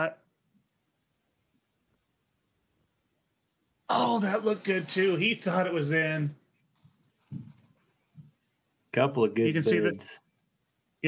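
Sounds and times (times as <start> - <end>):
man speaking: 3.9 - 6.4, 9.0 - 10.2.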